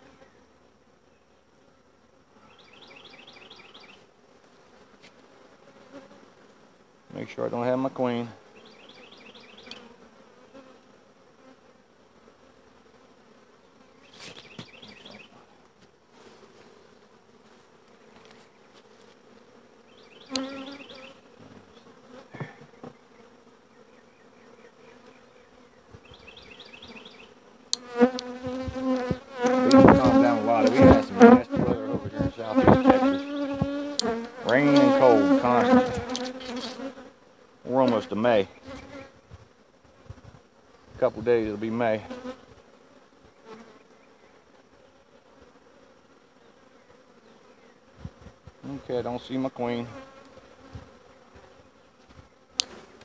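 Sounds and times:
bees buzzing: 0.0s - 53.0s.

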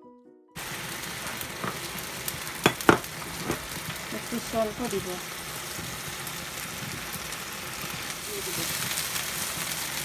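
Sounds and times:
food sizzling in pans: 0.6s - 10.0s.

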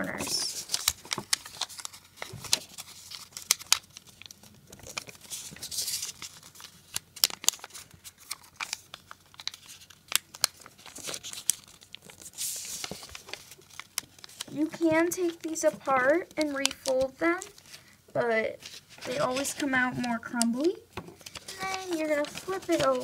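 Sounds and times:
paper crackling: 0.0s - 23.0s
fingers rubbing paper: 18.9s - 20.1s, 21.4s - 23.0s.

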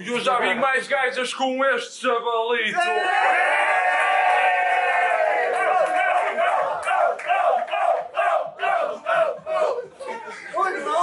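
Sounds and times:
crowd rhythmic shouts: 2.8s - 10.0s.

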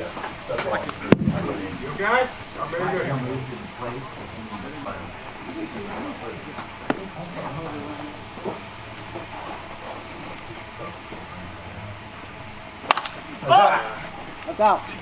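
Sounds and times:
low voices and field chatter: 0.0s - 15.0s
baseball bat hitting ball: 12.8s - 13.2s
small sharp pop: 12.9s - 13.2s.

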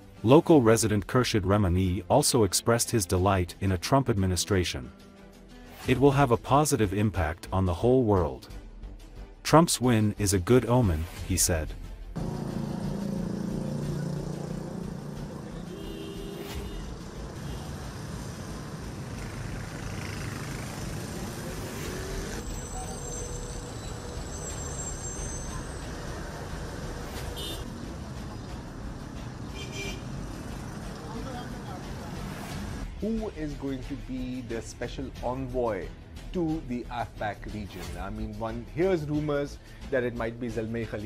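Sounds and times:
road traffic noise: 12.2s - 33.0s.

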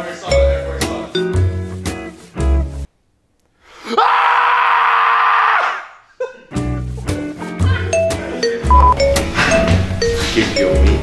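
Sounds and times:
loud steady scream: 3.8s - 6.0s
plucked notes over low bass: 8.6s - 11.0s.

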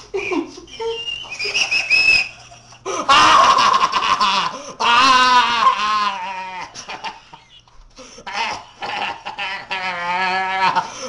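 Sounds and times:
man shrieking: 3.1s - 3.7s, 4.8s - 6.8s
man squealing through gag: 3.1s - 3.7s, 4.8s - 6.8s, 9.6s - 10.9s.

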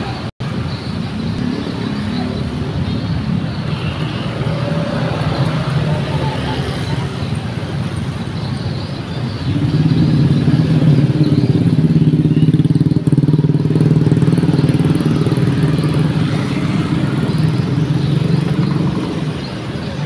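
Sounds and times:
motorcycle traffic passing: 0.0s - 20.0s.

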